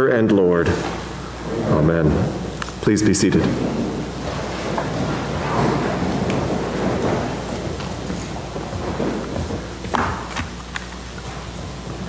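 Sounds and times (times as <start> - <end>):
people shuffling in wooden pews: 0.6 - 12.0.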